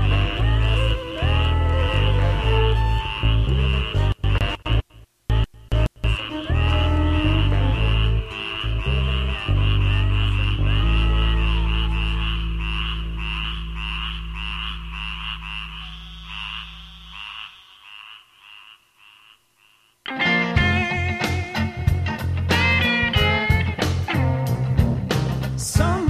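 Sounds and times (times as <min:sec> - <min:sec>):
blues song bass notes: 0:00.0 - 0:14.4, 0:20.1 - 0:26.0
frogs croaking: 0:05.8 - 0:20.2.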